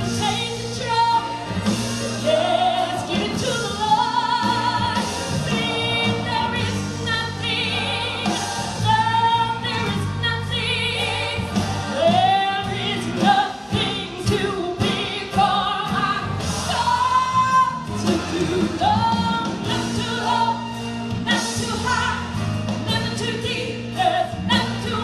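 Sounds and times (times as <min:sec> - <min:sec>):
instrumental accompaniment: 0:00.0 - 0:25.0
woman singing gospel: 0:00.0 - 0:25.0.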